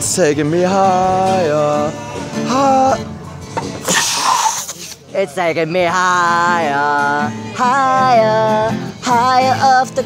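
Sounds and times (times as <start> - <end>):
faint acoustic guitar: 0.0 - 10.0.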